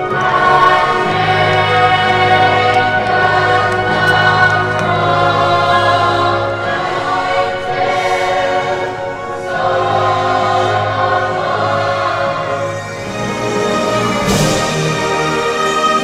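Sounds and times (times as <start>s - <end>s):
choir singing held chords: 0.0s - 16.0s.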